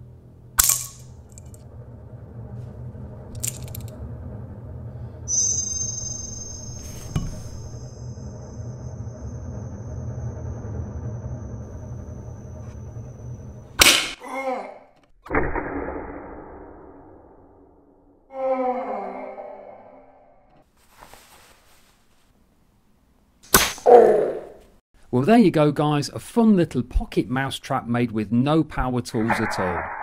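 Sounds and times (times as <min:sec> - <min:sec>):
tense background music: 0:00.0 - 0:14.2
mouse trap snapping shut: 0:00.6 - 0:01.0.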